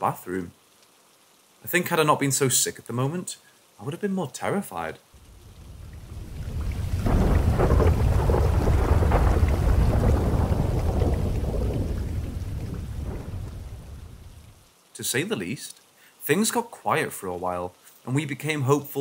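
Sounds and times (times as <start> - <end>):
rain: 0.0 - 19.0
rolling thunder rumble: 5.2 - 14.6.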